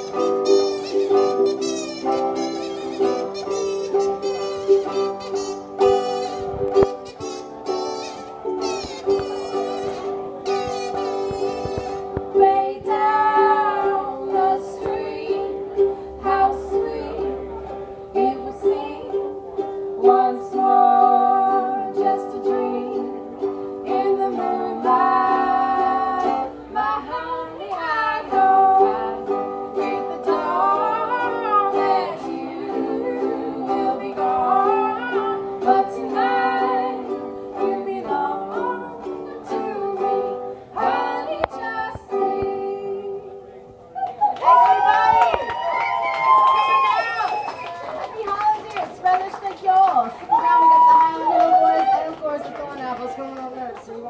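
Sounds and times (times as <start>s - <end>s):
ukuleles playing: 0.0s - 54.0s
women singing in harmony: 11.2s - 43.6s.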